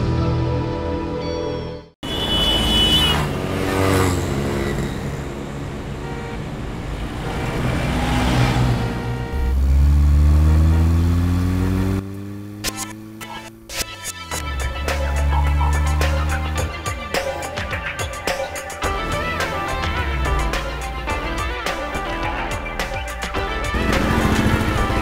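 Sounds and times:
car engine accelerating: 6.7 - 21.2.

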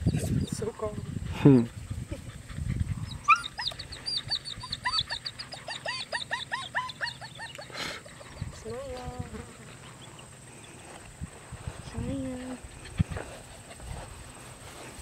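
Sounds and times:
puppy whining: 2.1 - 10.4
puppy yelping: 3.0 - 8.5.

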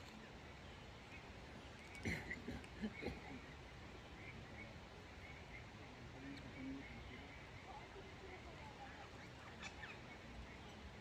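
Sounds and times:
distant bird chirps: 0.0 - 11.0.

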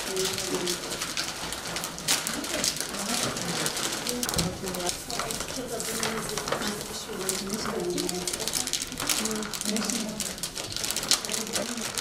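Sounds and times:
foil bags crinkling: 0.0 - 12.0
murmur of voices: 0.0 - 12.0.

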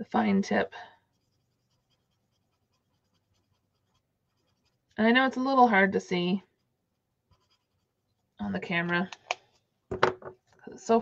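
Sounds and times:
marker scratching on card: 1.1 - 4.9, 6.4 - 8.0.

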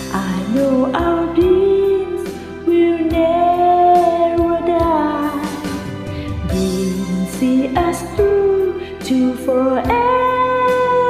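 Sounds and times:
ballad backing track: 0.0 - 11.0
person singing karaoke: 0.0 - 11.0.

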